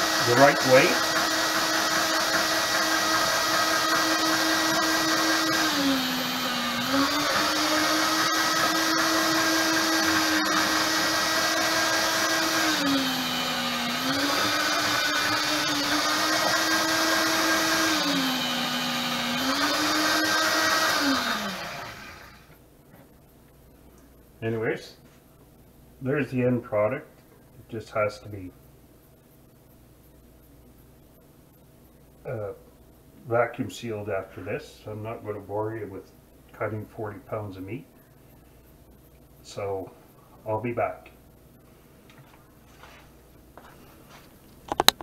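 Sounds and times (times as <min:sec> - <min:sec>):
meat slicer motor humming: 0:00.0 - 0:22.4.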